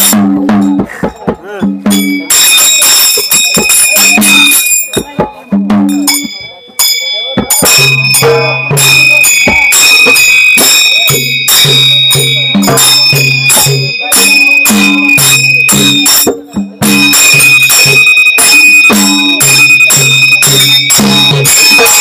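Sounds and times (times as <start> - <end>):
ringing metal hand cymbals: 1.8 - 22.0
clicking percussion: 1.9 - 5.2, 5.9 - 22.0.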